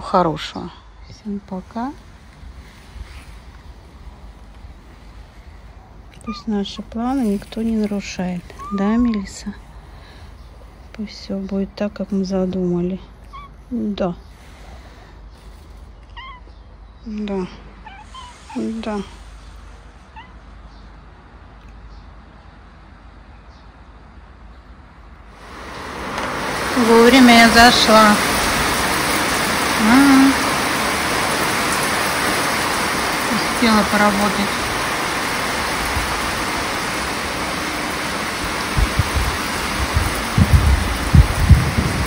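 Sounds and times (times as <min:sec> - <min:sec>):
low background rumble: 0:00.0 - 0:22.0
heavy rain on paving: 0:01.2 - 0:13.7, 0:18.1 - 0:19.7, 0:25.3 - 0:42.0
cat meowing: 0:08.5 - 0:09.2, 0:16.1 - 0:16.6, 0:20.1 - 0:20.4
wind buffeting microphone: 0:25.4 - 0:42.0.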